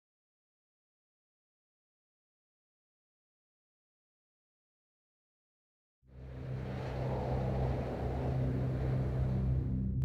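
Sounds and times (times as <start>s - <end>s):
low rumble with deep hum: 6.1s - 10.0s.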